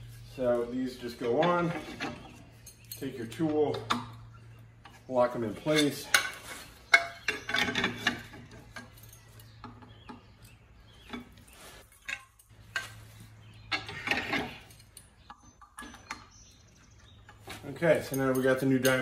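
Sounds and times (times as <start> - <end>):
metal clinks and clicks: 2.6 - 3.2, 6.9 - 9.8.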